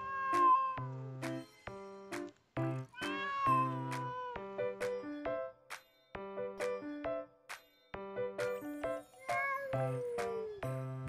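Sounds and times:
cat yowling: 0:00.0 - 0:00.9, 0:02.9 - 0:04.4, 0:09.2 - 0:10.6
background music with steady beat: 0:00.0 - 0:11.0.

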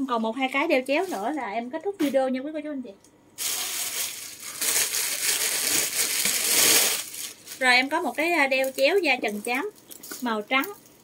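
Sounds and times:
packaging crinkling and rustling: 0:03.4 - 0:11.0.

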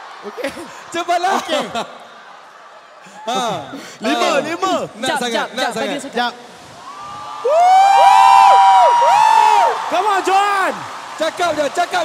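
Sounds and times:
crowd cheering: 0:00.0 - 0:04.8, 0:06.6 - 0:12.0
long high screams: 0:06.8 - 0:10.7.

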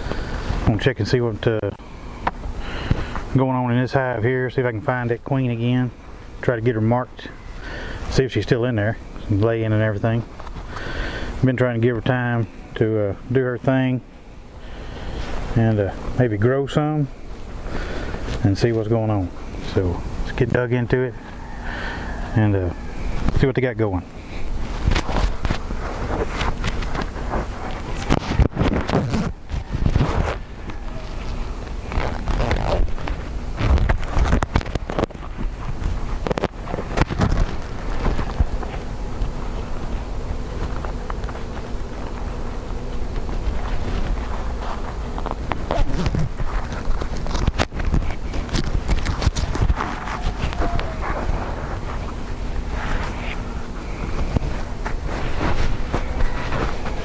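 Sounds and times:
knocks and scrapes of beehive parts: 0:24.7 - 0:38.8, 0:43.0 - 0:57.0.

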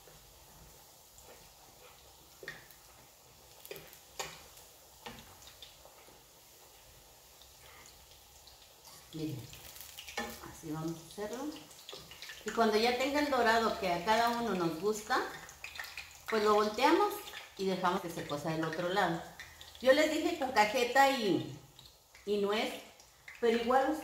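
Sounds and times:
dough sizzling in hot oil: 0:00.0 - 0:24.0.

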